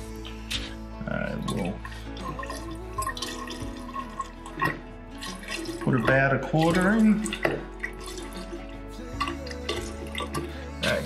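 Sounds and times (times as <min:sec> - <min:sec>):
liquid trickling and dripping: 0:00.0 - 0:11.0.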